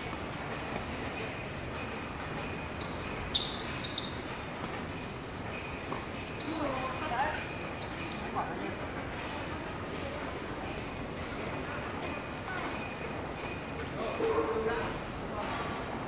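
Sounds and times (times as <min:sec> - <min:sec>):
steady background hum: 0:00.0 - 0:16.0.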